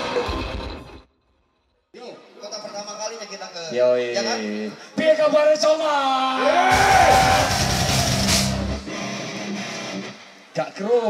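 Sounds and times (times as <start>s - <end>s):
vocal yell: 6.3s - 8.3s
heavy metal band playing: 6.6s - 10.2s.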